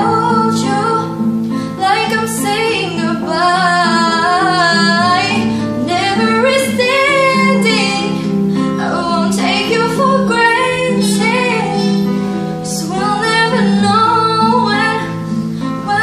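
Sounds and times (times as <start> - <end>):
classical guitar: 0.0 - 16.0
girl singing a pop song: 0.0 - 16.0.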